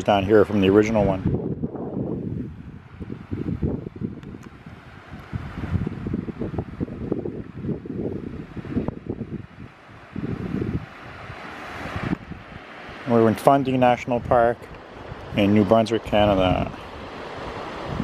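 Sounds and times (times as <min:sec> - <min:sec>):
wind on microphone: 0:00.0 - 0:18.0.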